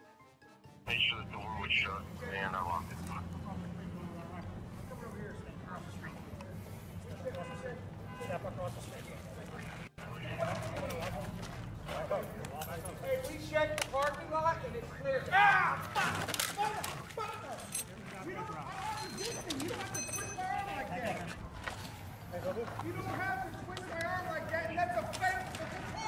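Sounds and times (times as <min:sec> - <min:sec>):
raised indistinct voices: 0:14.4 - 0:26.0.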